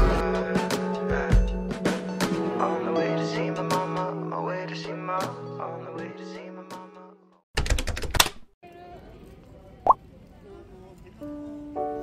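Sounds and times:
busy street ambience: 8.6s - 12.0s
faint passers-by voices: 8.6s - 12.0s.

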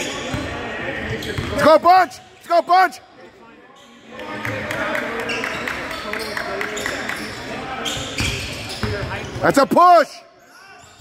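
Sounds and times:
overlapping voices of crowd: 4.1s - 7.3s
basketball bouncing on court: 8.0s - 9.4s.

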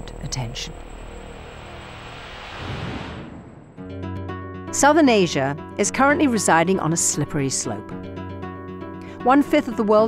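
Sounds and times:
rumbling whooshing transition effect: 0.9s - 4.0s.

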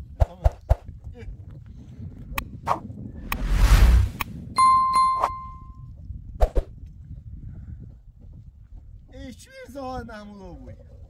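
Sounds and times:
rush of noise: 3.2s - 4.3s
metal ringing ding: 4.6s - 5.8s.

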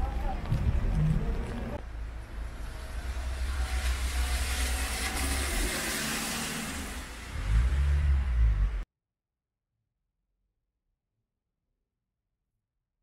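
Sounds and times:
tyres hissing on wet road: 1.9s - 8.8s.

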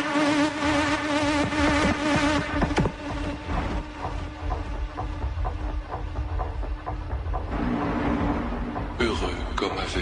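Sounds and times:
buzzing synth drone: 0.0s - 9.0s
deep bass: 3.0s - 10.0s.

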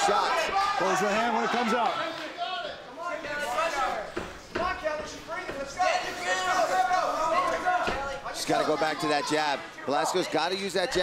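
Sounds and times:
voices shouting: 0.0s - 11.0s.

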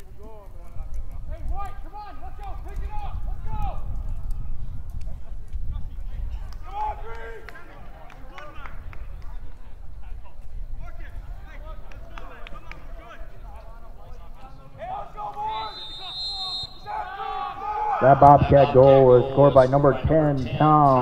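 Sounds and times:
people shouting and calling: 10.9s - 20.1s.

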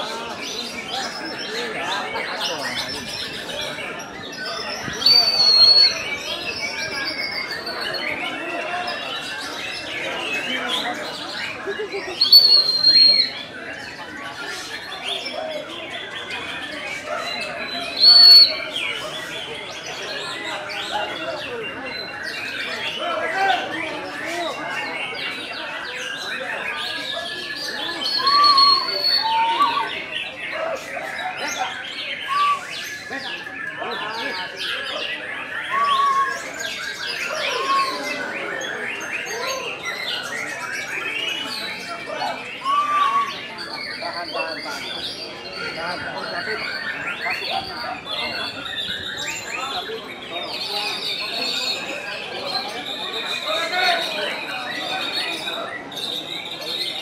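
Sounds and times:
murmur of voices: 0.0s - 57.0s
songbirds singing and calling: 0.0s - 57.0s
loud high bird whistle: 5.0s - 6.1s, 12.2s - 13.4s, 18.0s - 18.7s, 28.1s - 29.9s, 42.6s - 43.4s.

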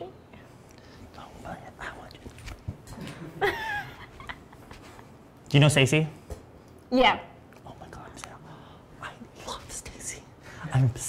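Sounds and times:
quiet talking and whispering: 0.8s - 2.6s, 7.5s - 11.0s.

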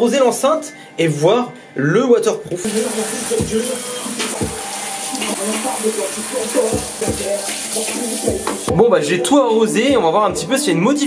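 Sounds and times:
shower spray hissing: 2.6s - 8.7s
speaker playing song with beat: 2.6s - 10.8s.

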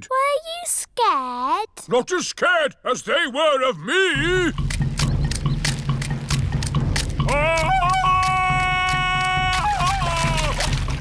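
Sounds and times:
jungle-style music with drum beat: 4.2s - 11.0s
cartoon character jungle yell: 7.3s - 10.6s.

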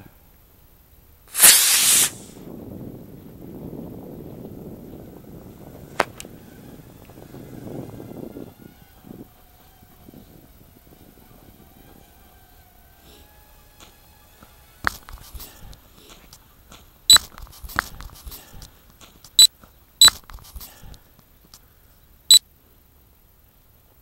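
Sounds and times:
sharp pop: 1.3s - 2.3s, 6.0s - 6.3s
rocket motor whoosh: 1.3s - 2.4s
electric propeller motors whine: 1.4s - 16.7s.

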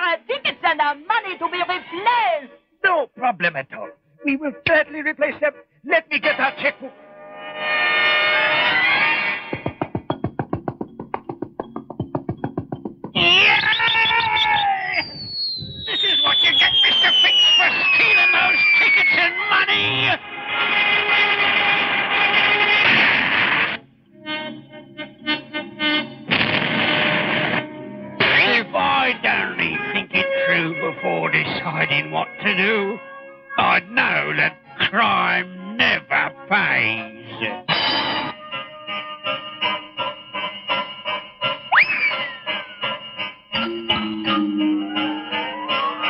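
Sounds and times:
loud busy cartoon music: 7.6s - 46.0s
comic sound effects: 13.2s - 15.1s, 15.9s - 19.1s
falling whistle: 13.2s - 19.5s, 41.7s - 42.5s.

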